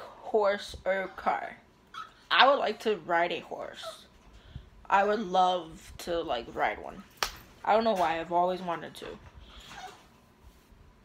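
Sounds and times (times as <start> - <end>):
dog whimpering: 1.0 - 2.3.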